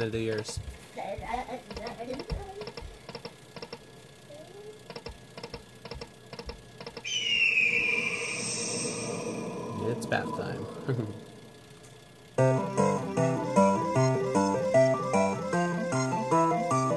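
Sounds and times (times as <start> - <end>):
slot machine reels ticking: 0.0 - 0.6, 1.6 - 7.1.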